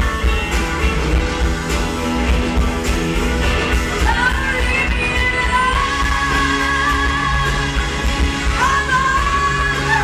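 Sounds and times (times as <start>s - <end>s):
electric bass: 0.0s - 10.0s
live pop band: 0.0s - 10.0s.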